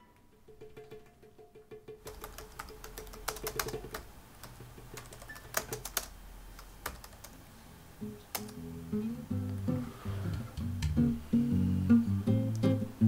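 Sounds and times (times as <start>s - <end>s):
music: 0.0s - 2.1s, 7.8s - 13.0s
keyboard key clicks: 2.1s - 7.4s, 8.4s - 8.6s.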